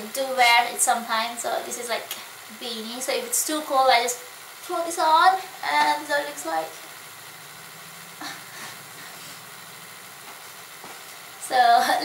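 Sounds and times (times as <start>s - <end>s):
faint low hum: 0.0s - 12.0s
steady hiss: 0.0s - 12.0s.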